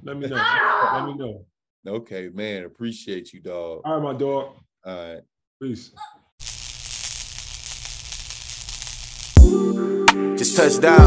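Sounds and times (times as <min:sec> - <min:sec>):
crackling static: 0:06.4 - 0:09.4.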